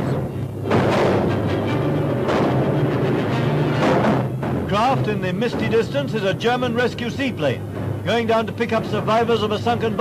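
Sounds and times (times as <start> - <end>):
newsreel music with low notes: 0.0 - 10.0.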